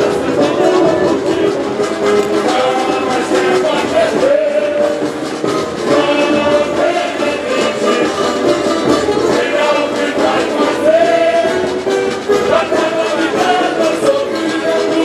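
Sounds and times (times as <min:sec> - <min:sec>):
samba percussion beat: 0:00.0 - 0:15.0
sung samba melody: 0:00.0 - 0:15.0.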